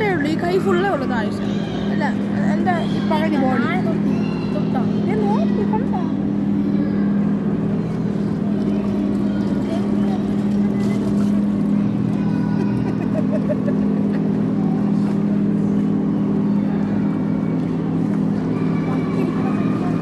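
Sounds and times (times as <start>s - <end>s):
boat motor humming: 0.0s - 20.0s
faint voices: 0.0s - 20.0s.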